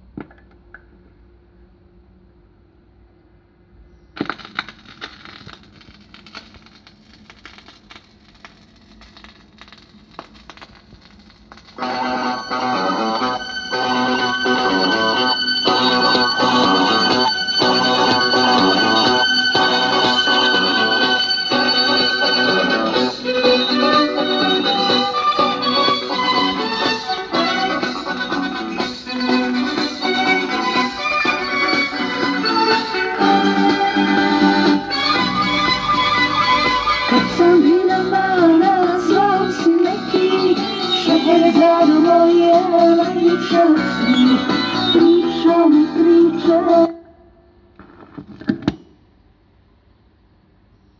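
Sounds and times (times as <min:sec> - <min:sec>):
vinyl stylus crackle and ticks: 0:04.2 - 0:26.7
music with guitar: 0:11.8 - 0:47.0.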